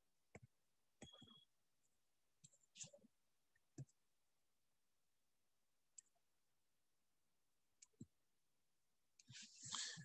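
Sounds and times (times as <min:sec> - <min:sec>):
faint clicks and taps: 0:00.3 - 0:04.0, 0:07.8 - 0:08.2.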